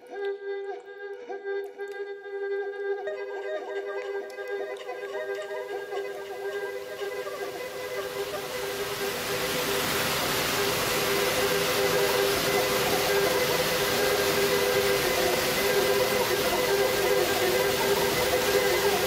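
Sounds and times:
dense hiss-like noise wash: 3.5 - 19.0
sustained drone tones: 3.5 - 19.0.

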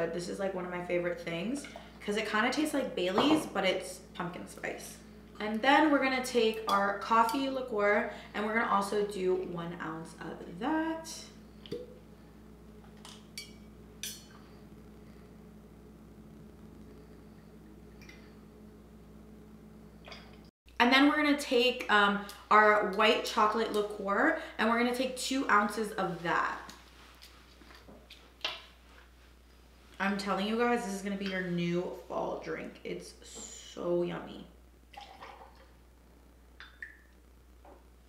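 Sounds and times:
steady low hum: 0.0 - 38.0.

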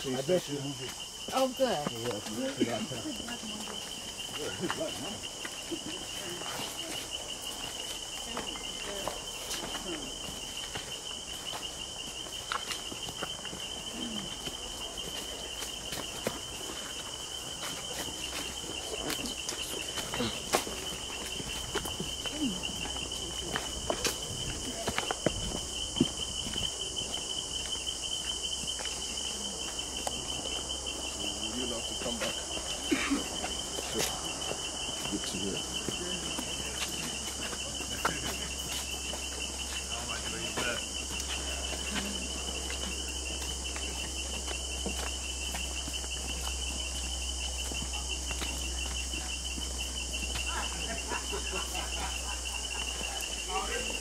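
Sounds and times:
footsteps on stone path: 0.0 - 54.0
insects droning: 0.0 - 54.0.

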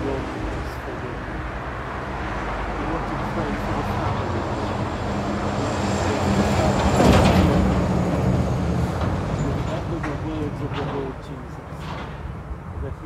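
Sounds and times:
heavy vehicle passing: 0.0 - 13.0.

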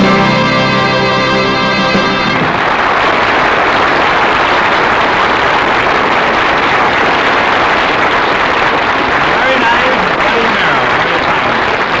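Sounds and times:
audience applauding: 0.0 - 12.0
voices in crowd: 9.2 - 12.0.

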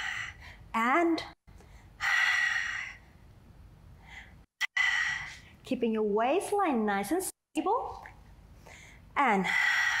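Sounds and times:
soft breath: 4.0 - 5.6, 8.5 - 10.0.

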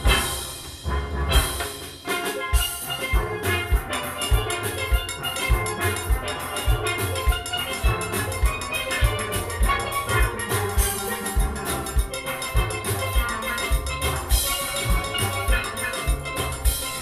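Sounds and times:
steel pans ringing notes: 0.0 - 17.0
steady low beat: 3.1 - 17.0.

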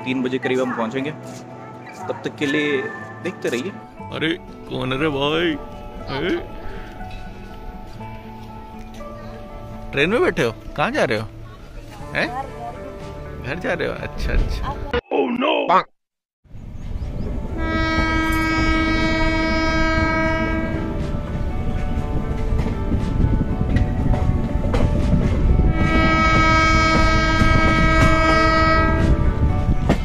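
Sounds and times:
train wheels rumbling: 16.6 - 30.0
train horn blasts: 17.4 - 22.2, 25.5 - 30.0.

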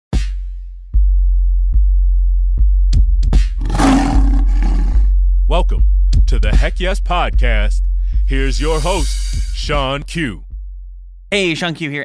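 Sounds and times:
lion roaring: 3.6 - 5.2
deep electronic bass beat: 4.4 - 11.0.

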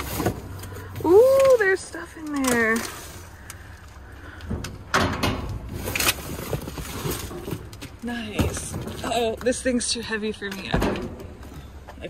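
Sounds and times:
cardboard and trash rustling: 0.0 - 3.8, 5.0 - 9.6.

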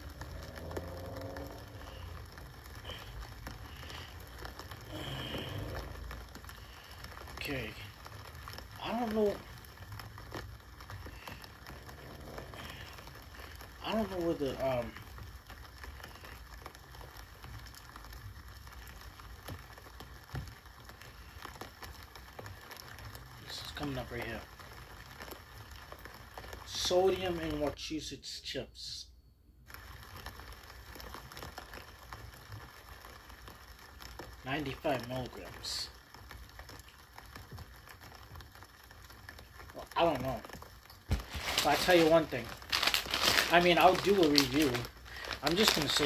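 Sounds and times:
rain pattering on street: 0.0 - 28.2, 29.6 - 46.0.

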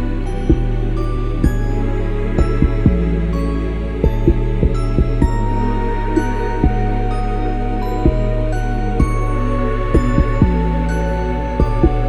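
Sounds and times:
airy synth pads: 0.0 - 12.0
deep bass drum hits: 2.4 - 3.2, 4.0 - 5.5, 10.0 - 10.8.

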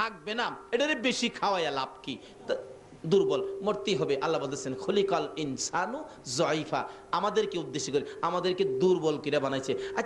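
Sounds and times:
man preaching into microphone: 0.0 - 10.0.

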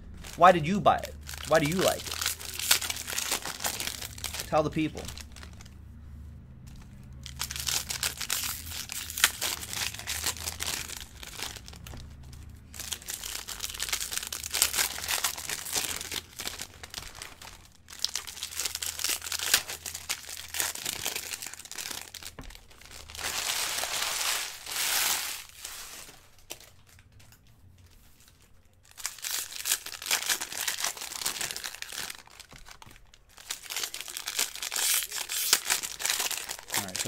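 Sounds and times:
foil wrappers crinkling and tearing: 0.1 - 5.7, 6.8 - 27.2, 28.2 - 37.0.

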